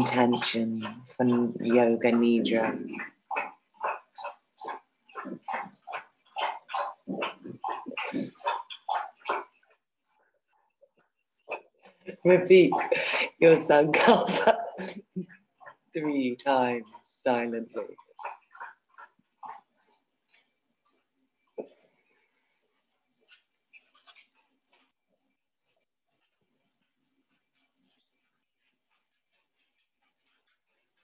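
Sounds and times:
woman laughing: 12.8s - 15.3s.

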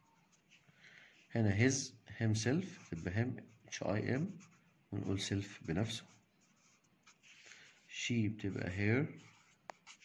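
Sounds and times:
marker scratching on paper: 0.0s - 0.7s, 2.4s - 8.0s, 9.1s - 10.0s.

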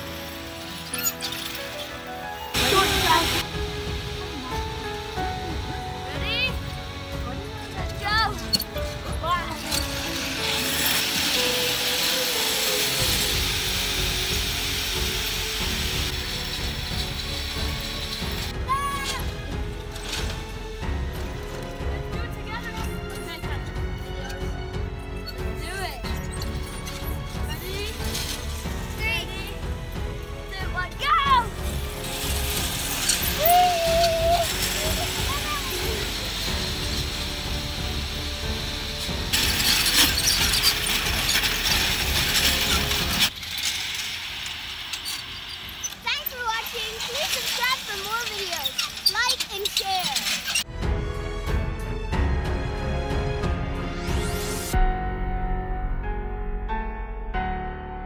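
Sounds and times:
metal rollers rattling: 0.0s - 50.7s.

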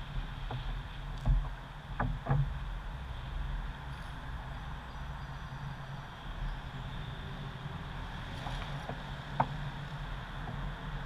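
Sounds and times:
wind rumble on microphone: 0.0s - 11.0s.

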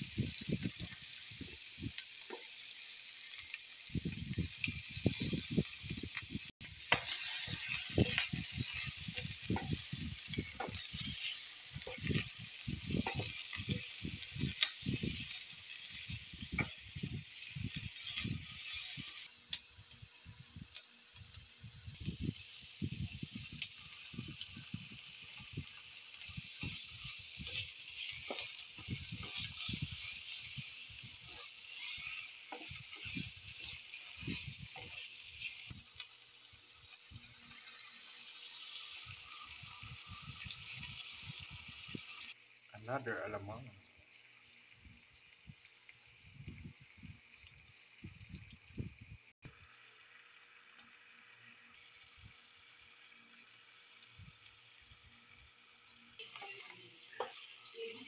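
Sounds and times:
meat sizzling in oil: 0.0s - 58.0s
spatula scraping pan: 6.8s - 16.0s, 26.1s - 35.8s, 56.2s - 58.0s.

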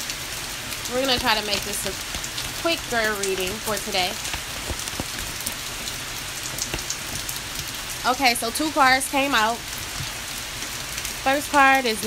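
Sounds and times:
steady rain hiss: 0.0s - 12.0s.

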